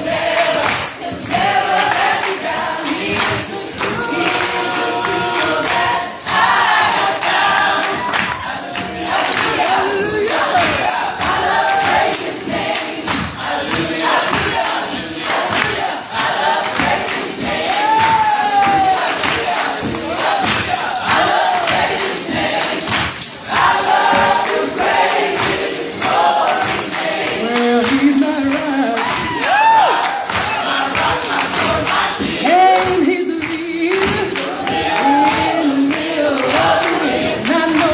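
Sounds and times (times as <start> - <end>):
choir singing gospel song: 0.0 - 37.9
rhythmic hand claps: 0.0 - 37.9
shaken percussion: 0.0 - 37.9.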